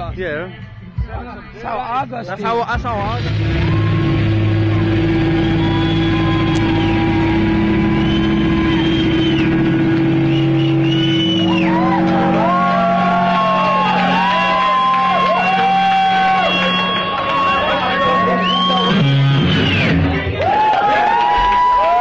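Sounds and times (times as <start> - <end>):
distorted electric guitars: 2.7 - 22.0.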